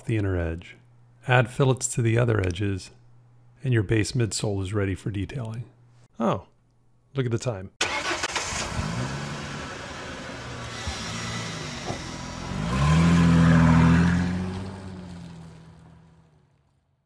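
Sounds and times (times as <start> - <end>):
car engine starting and revving: 7.8 - 16.8.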